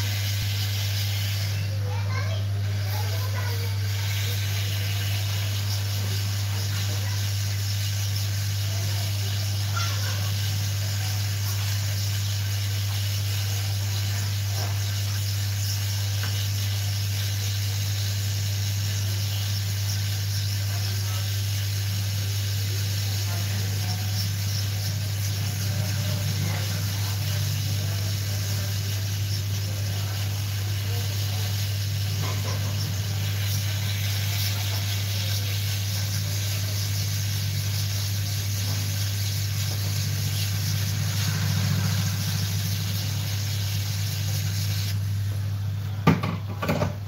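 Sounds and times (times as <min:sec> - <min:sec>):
hot air blower hissing: 0:00.0 - 0:47.0.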